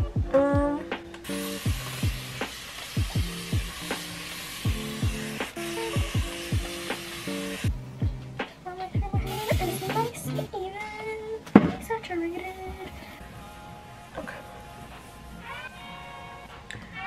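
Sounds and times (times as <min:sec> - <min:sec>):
background music with steady beat: 0:00.0 - 0:17.0
hair spray hissing: 0:01.3 - 0:07.7, 0:09.3 - 0:10.4.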